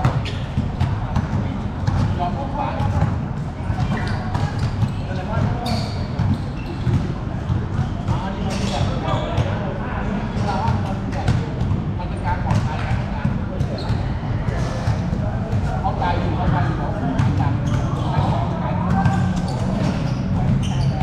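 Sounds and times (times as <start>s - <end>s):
basketballs bouncing on court: 0.0s - 9.6s, 10.2s - 21.0s.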